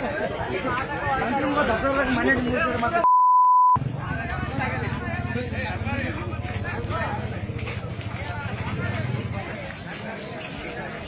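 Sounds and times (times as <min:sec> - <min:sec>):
people talking over each other: 0:00.0 - 0:03.1, 0:03.8 - 0:11.0.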